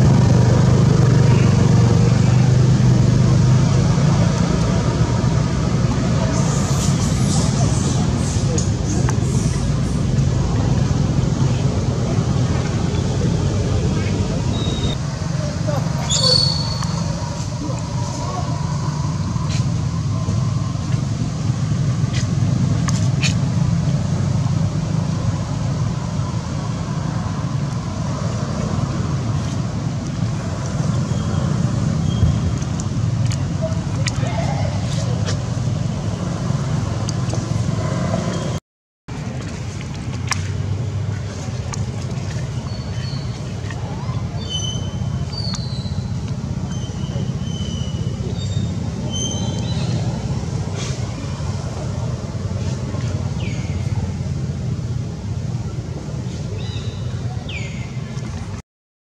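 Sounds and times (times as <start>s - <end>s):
low outdoor rumble: 0.0s - 58.6s.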